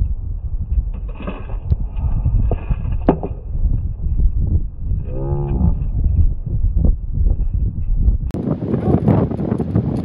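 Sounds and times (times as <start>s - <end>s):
low rumble of wind on microphone: 0.0s - 10.0s
deep drawn-out voice: 4.8s - 6.2s.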